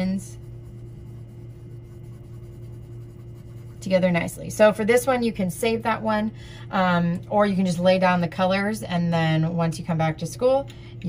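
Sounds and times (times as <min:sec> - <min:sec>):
cotton swab scrubbing paper: 0:00.0 - 0:04.8
low electrical hum: 0:00.0 - 0:11.0.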